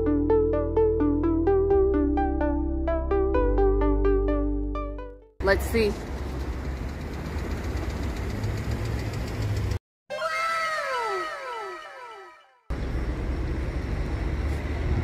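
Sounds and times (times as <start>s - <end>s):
falling whistle-like tones: 10.1s - 12.7s
outdoor noise with low rumble: 12.7s - 15.0s.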